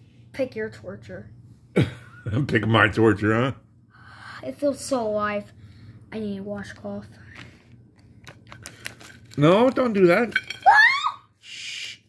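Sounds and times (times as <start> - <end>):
plastic zip bag crinkling: 8.4 - 9.9.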